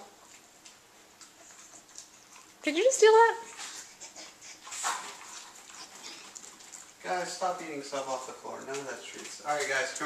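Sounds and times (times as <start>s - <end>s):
dogs chewing: 0.0s - 10.0s
dogs sniffing: 3.4s - 7.6s.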